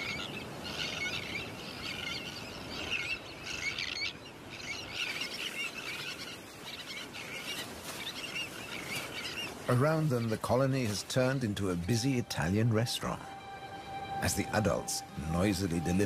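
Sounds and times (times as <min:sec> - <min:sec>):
terns chirping calls: 0:00.0 - 0:16.0.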